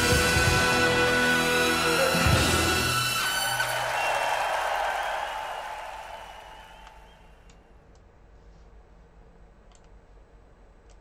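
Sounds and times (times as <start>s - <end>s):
audience applause: 1.4s - 7.3s.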